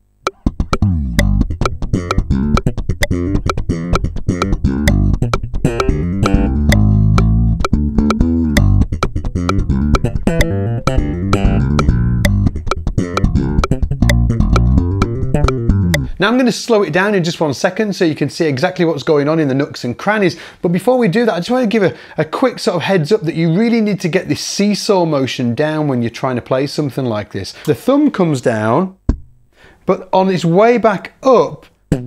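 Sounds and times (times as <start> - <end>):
slap bass funk line: 0.2 - 16.2.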